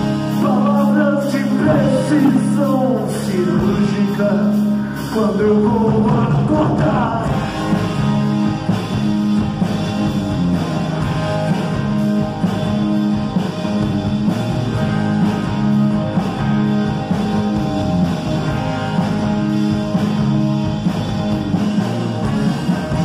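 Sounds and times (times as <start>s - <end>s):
rock band with electric guitars: 0.0s - 23.0s.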